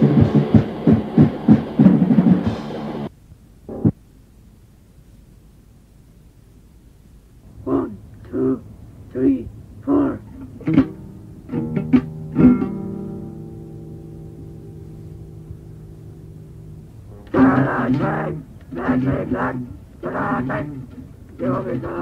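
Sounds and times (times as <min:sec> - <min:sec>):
guitar chords strummed: 0:00.0 - 0:03.1, 0:10.2 - 0:22.0
voices: 0:07.5 - 0:10.8, 0:16.3 - 0:22.0.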